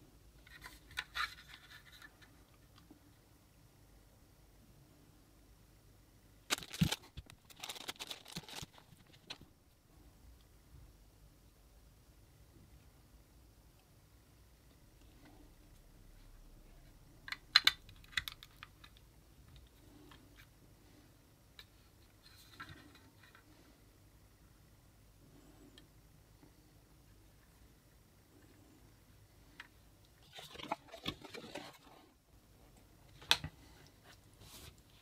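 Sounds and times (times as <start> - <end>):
paper rustling: 6.5 - 9.4, 30.2 - 32.1.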